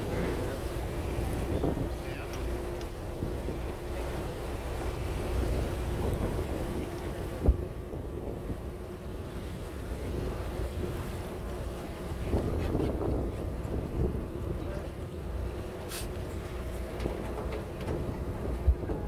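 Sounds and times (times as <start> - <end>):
boat engine drone: 0.0 - 19.0
wind buffeting microphone: 0.0 - 19.0.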